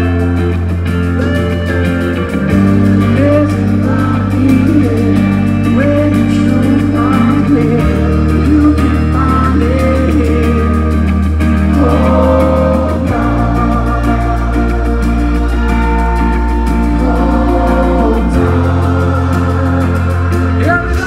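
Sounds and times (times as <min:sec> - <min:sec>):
deep bass line: 0:00.0 - 0:21.0
reggae band playing: 0:00.0 - 0:21.0
man singing: 0:02.8 - 0:21.0.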